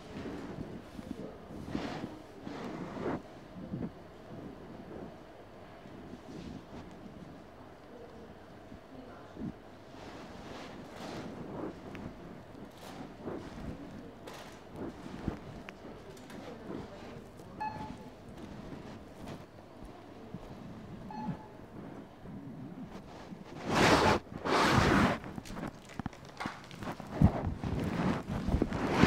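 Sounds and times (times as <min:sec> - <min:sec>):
loud rustling on microphone: 0:00.0 - 0:29.0
supermarket background noise: 0:00.0 - 0:29.0
short electronic beeps: 0:17.6 - 0:18.1, 0:21.1 - 0:21.6.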